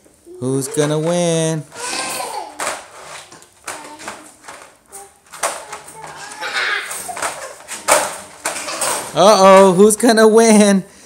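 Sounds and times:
crate bars rattling: 0.7s - 9.9s
child's voice: 1.8s - 2.8s, 3.7s - 7.0s.

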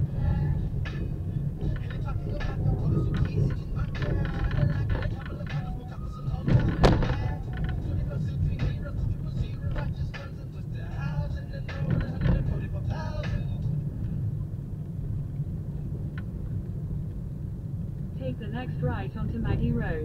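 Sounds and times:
car engine and tyres rumbling: 0.0s - 20.0s.

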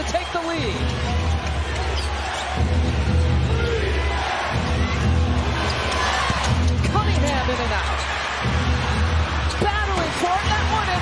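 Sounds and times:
arena crowd noise: 0.0s - 11.0s
bass-heavy music over loudspeakers: 2.6s - 11.0s.

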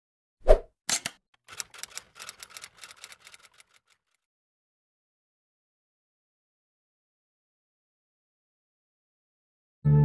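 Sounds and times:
typewriter key clicks: 0.9s - 3.6s.

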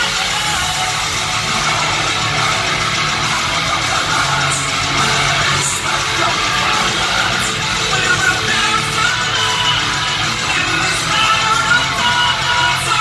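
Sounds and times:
heavy metal band playing live: 0.0s - 13.0s.

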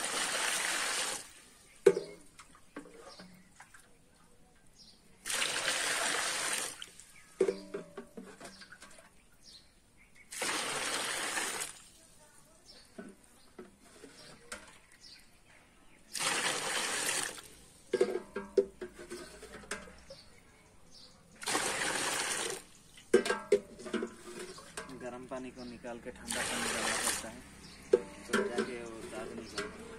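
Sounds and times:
water pouring and splashing: 0.0s - 4.4s, 5.1s - 9.3s, 10.2s - 12.2s, 16.1s - 20.2s, 21.3s - 29.9s.

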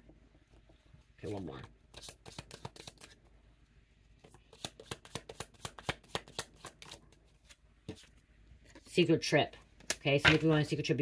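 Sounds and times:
cards being shuffled: 1.9s - 3.2s, 4.2s - 8.9s.

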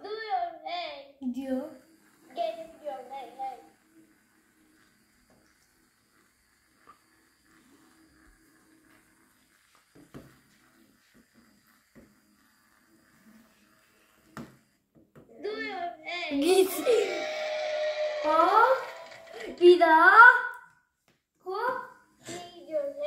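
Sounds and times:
child's voice: 0.0s - 3.8s, 15.3s - 20.6s, 21.5s - 23.0s.

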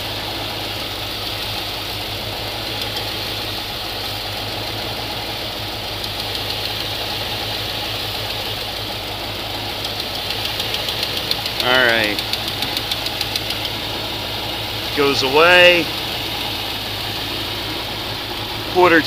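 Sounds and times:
engine idling: 0.0s - 19.0s
valvetrain ticking: 1.0s - 4.8s, 5.8s - 8.9s, 9.5s - 19.0s.

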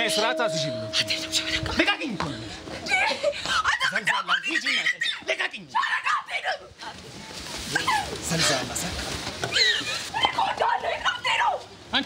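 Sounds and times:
whimpering and wailing: 0.0s - 5.1s.

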